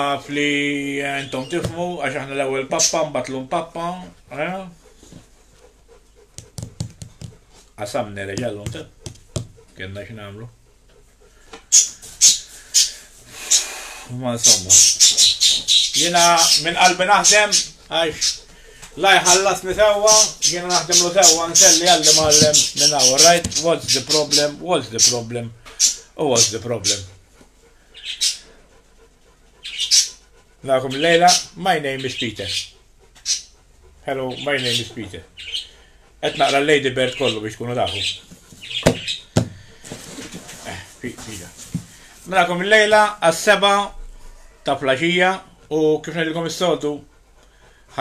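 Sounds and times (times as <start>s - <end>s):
puppy panting: 0.0s - 48.0s.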